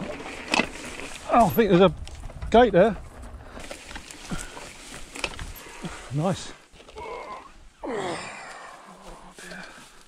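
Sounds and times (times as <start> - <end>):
man groaning with effort: 7.0 - 8.9.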